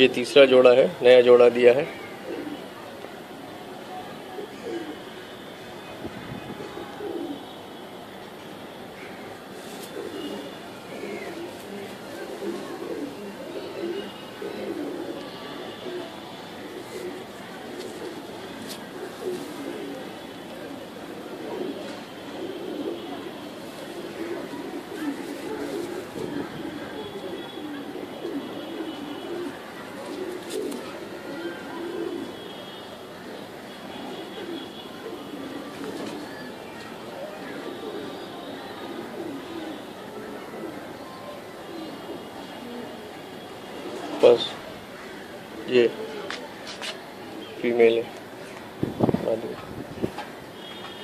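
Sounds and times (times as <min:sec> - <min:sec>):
pigeon cooing: 0:01.9 - 0:02.8, 0:04.3 - 0:05.2, 0:06.4 - 0:07.6, 0:09.2 - 0:48.0.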